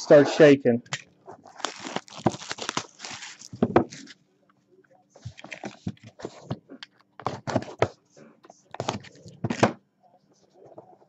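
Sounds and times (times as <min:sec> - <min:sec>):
plastic wrap and cardboard rustling: 0:01.3 - 0:04.2.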